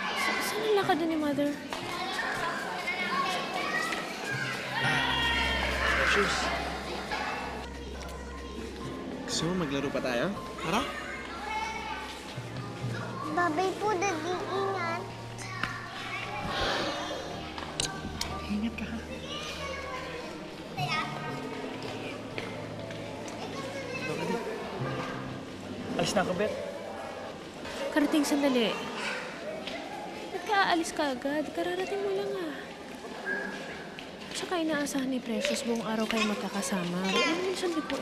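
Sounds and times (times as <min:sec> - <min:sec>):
children playing and shouting: 0:00.0 - 0:38.0
party crowd chatter: 0:00.0 - 0:38.0
loud rising shout: 0:04.7 - 0:06.6.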